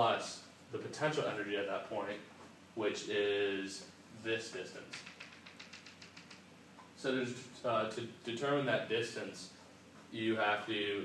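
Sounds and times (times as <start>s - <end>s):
chalk tapping on blackboard: 4.9s - 6.5s.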